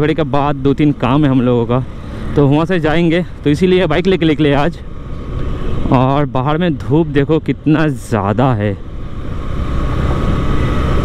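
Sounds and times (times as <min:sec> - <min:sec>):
motorcycle road noise: 0:00.0 - 0:11.0.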